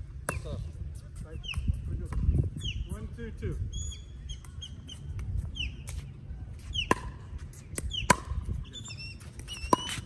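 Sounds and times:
wind rumble on microphone: 0:00.0 - 0:09.7
bird whistled call: 0:03.7 - 0:05.9, 0:07.9 - 0:10.0.

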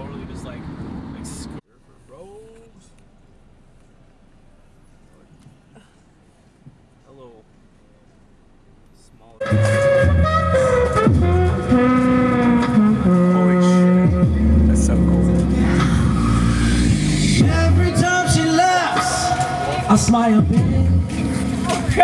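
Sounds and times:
street band playing amplified music: 0:09.4 - 0:22.0.

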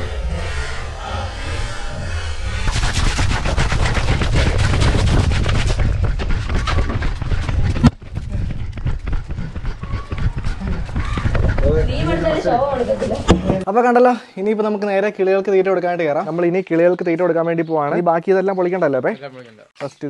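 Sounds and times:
camera knocking and rattling: 0:03.7 - 0:11.7.

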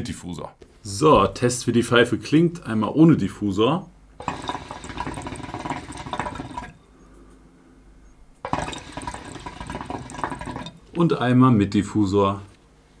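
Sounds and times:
hookah water bubbling: 0:04.2 - 0:06.8, 0:08.5 - 0:11.0.

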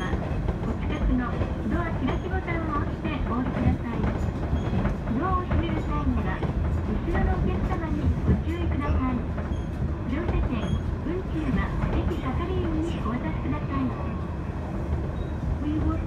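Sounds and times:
people talking: 0:00.0 - 0:04.1, 0:05.1 - 0:09.3, 0:10.1 - 0:14.0, 0:15.6 - 0:16.0
train rumble: 0:00.0 - 0:16.0.

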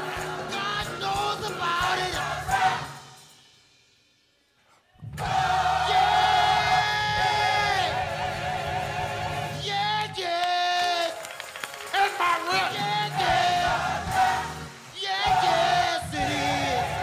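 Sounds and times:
choir singing with instruments: 0:00.0 - 0:03.6, 0:05.0 - 0:11.2, 0:12.1 - 0:17.0.

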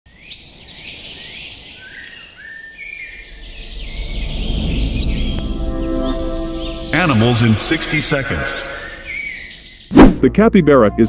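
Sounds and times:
songbirds chirping and whistling: 0:00.1 - 0:10.0
low rumble: 0:03.1 - 0:08.2
sustained musical tones: 0:03.1 - 0:09.8.

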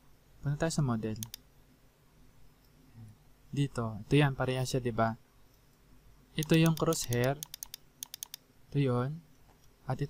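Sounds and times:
computer mouse clicks: 0:01.2 - 0:01.4, 0:06.4 - 0:08.4.

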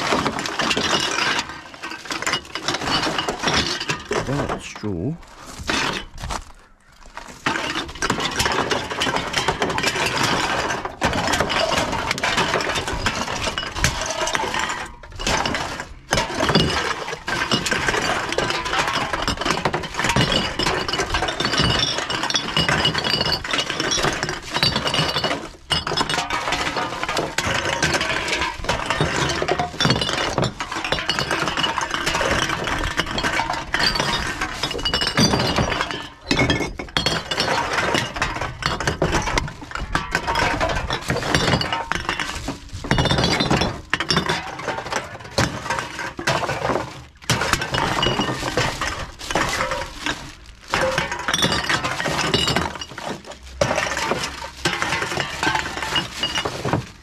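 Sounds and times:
cans and bottles clinking: 0:00.0 - 0:57.0.

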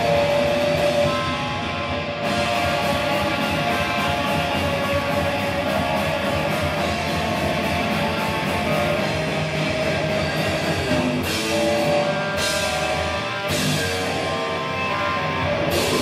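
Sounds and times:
metal band playing: 0:00.0 - 0:16.0.

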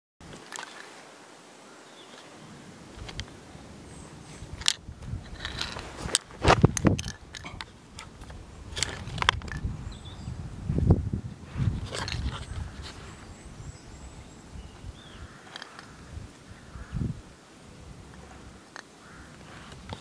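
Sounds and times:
faint bird chirps: 0:01.7 - 0:02.7, 0:09.8 - 0:10.4, 0:12.3 - 0:17.1.

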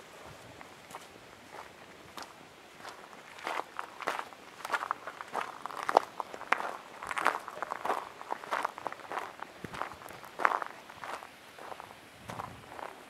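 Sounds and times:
footsteps on gravel: 0:00.8 - 0:13.0.

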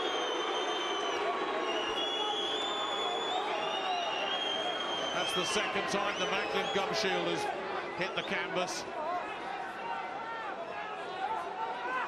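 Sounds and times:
long high whistles: 0:00.0 - 0:05.4
arena crowd cheering: 0:00.0 - 0:12.0.

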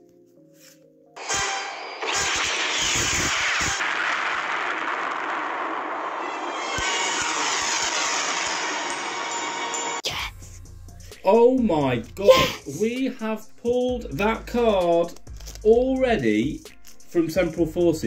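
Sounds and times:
music: 0:00.0 - 0:02.2, 0:06.5 - 0:18.0
dense rush of noise: 0:01.2 - 0:10.0.

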